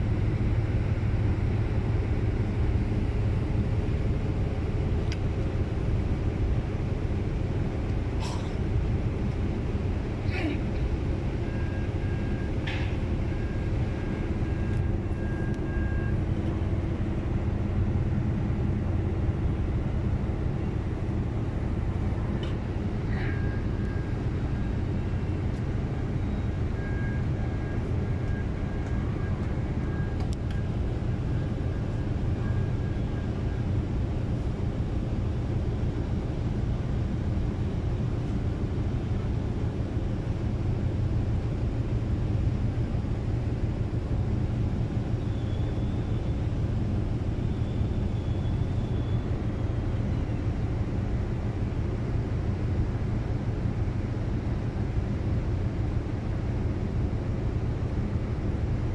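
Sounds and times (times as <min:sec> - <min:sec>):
ferry engines rumbling: 0:00.0 - 0:58.9.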